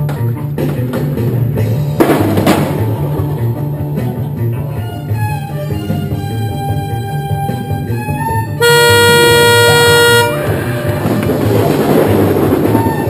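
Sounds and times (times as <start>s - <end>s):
music playing: 0.0s - 13.0s
car horn blast: 8.6s - 10.6s.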